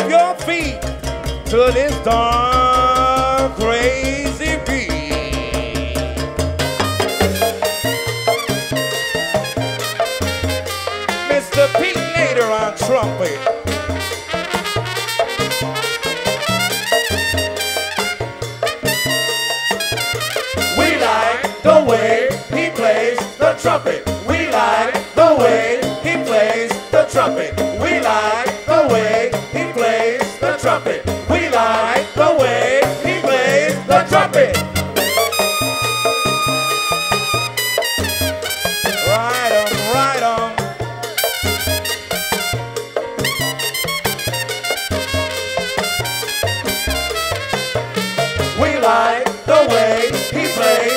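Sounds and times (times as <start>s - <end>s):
salsa band playing: 0.0s - 50.9s
trumpet solo: 5.4s - 21.5s, 33.3s - 49.0s, 49.7s - 50.9s.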